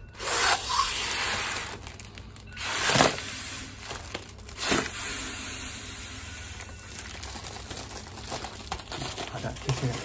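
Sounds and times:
foil crinkling: 0.2s - 10.0s
breath blown into a bag: 4.6s - 6.7s.

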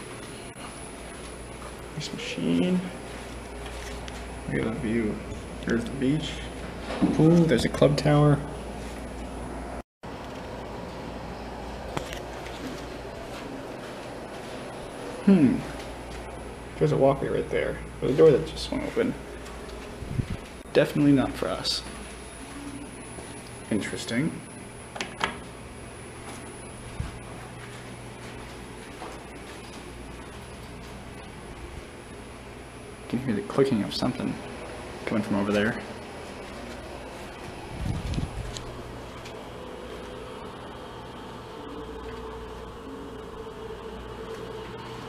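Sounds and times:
low room hum: 0.0s - 45.0s.

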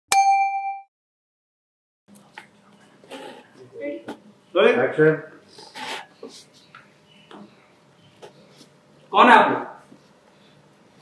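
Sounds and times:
metallic bell-like ding: 0.1s - 0.9s.

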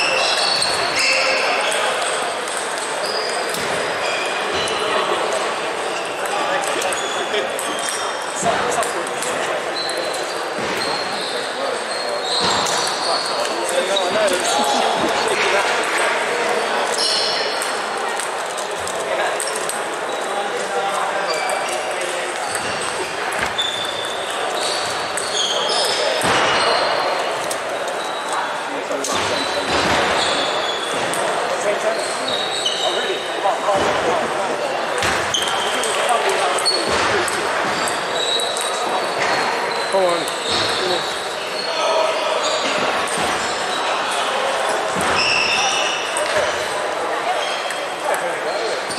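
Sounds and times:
hubbub of voices: 0.0s - 48.9s
people talking: 0.0s - 48.9s.

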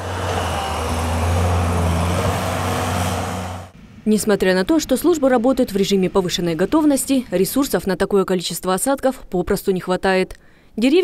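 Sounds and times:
loader engine droning: 0.0s - 4.0s.

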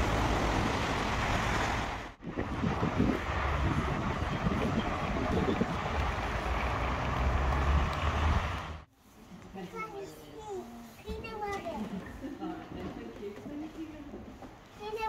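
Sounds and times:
wind buffeting microphone: 0.6s - 8.6s.

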